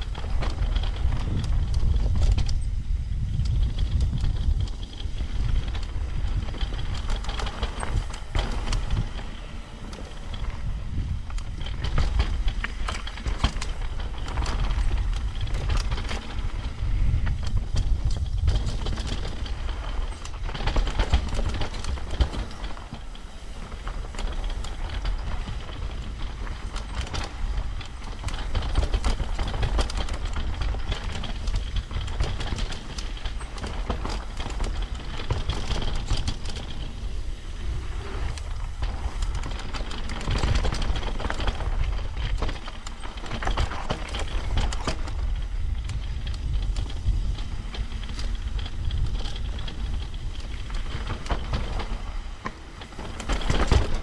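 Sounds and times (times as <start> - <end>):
bike rattling and clattering: 0.0 - 54.0
wind rumble on microphone: 0.0 - 54.0.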